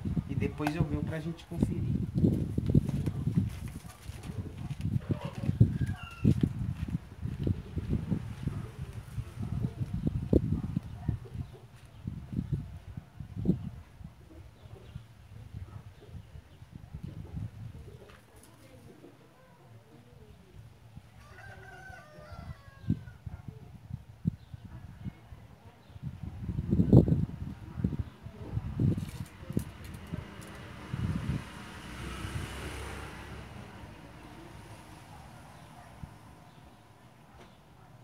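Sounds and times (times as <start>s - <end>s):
rooster crowing: 21.2s - 23.2s.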